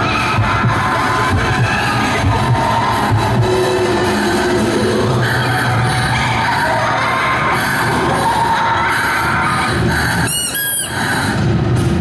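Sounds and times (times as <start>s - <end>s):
stage soundtrack music: 0.0s - 12.0s
comic high squeaks: 10.2s - 11.1s.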